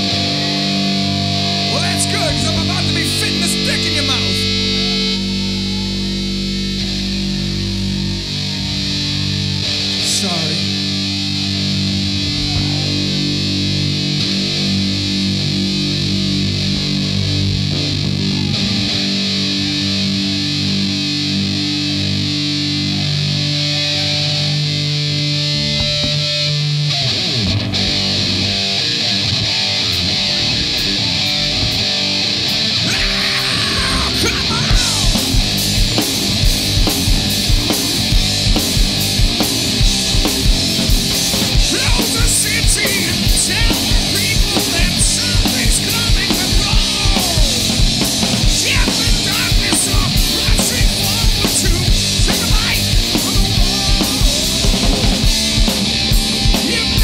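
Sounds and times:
bass guitar: 0:00.0 - 0:57.0
distorted electric guitars: 0:00.0 - 0:57.0.

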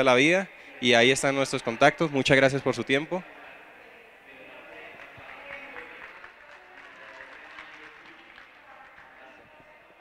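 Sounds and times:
audience applauding: 0:04.7 - 0:09.6.

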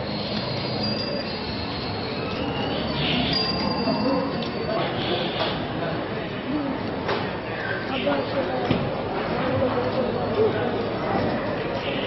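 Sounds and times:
thin high squeal: 0:00.0 - 0:04.8
crowd sound: 0:00.0 - 0:12.0
traffic: 0:00.0 - 0:12.0.

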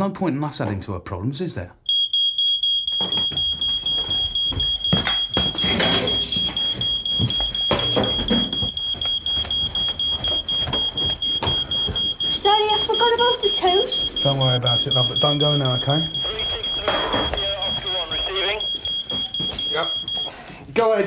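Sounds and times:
smoke alarm pulsing beep: 0:01.8 - 0:20.5.

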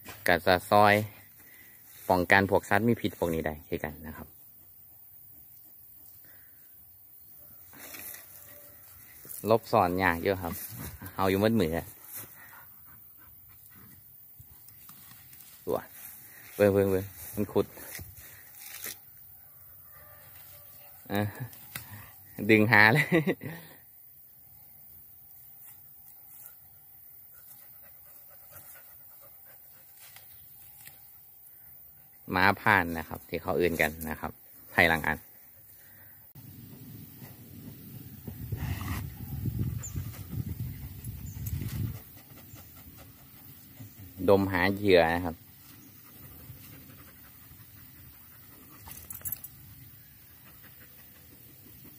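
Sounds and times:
leaves rustling: 0:00.0 - 0:04.0, 0:07.4 - 0:12.6, 0:13.6 - 0:23.3, 0:25.4 - 0:31.7, 0:32.3 - 0:42.6
dog panting faintly: 0:11.9 - 0:14.6, 0:27.2 - 0:30.2, 0:38.5 - 0:44.5, 0:45.4 - 0:49.1, 0:49.8 - 0:51.9
dog sniffing hard: 0:38.5 - 0:44.2.

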